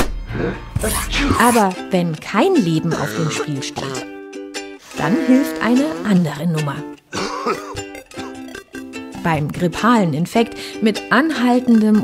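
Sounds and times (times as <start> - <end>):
plucked-string music: 1.6 - 12.0
person coughing: 7.1 - 8.4.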